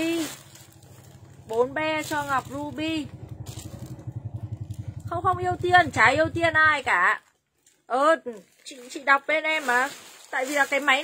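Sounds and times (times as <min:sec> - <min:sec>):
pulsing engine hum: 0:00.0 - 0:07.1.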